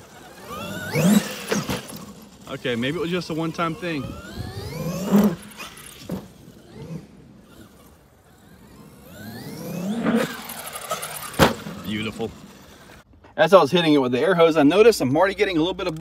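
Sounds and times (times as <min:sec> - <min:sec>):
electric motor whining: 0:00.0 - 0:13.0.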